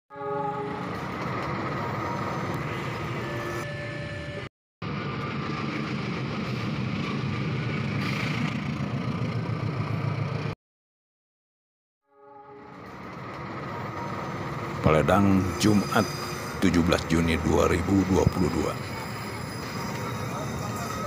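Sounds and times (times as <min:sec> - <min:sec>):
diesel locomotive engine rumble: 0:00.1 - 0:10.6, 0:12.5 - 0:21.0
train running noise: 0:00.1 - 0:10.6, 0:12.6 - 0:21.0.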